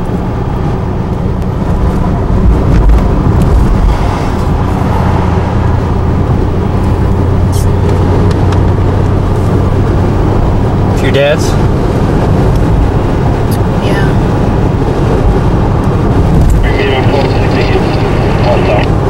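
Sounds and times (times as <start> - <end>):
car interior engine and tyre drone: 0.0 - 19.0.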